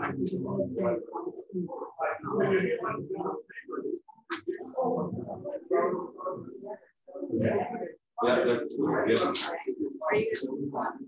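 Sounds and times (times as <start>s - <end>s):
muffled voices talking: 0.0s - 11.0s.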